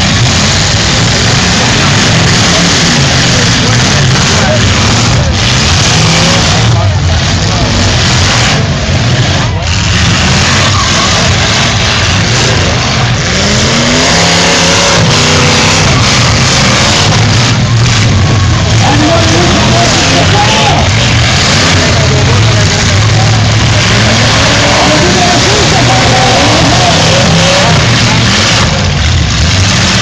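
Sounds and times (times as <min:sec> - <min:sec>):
car engines revving hard: 0:00.0 - 0:30.0
crowd voices: 0:00.0 - 0:30.0
tyres spinning: 0:00.0 - 0:30.0.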